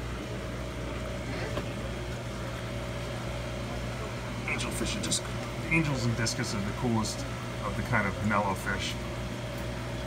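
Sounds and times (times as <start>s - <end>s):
aquarium equipment humming: 0.0s - 10.0s.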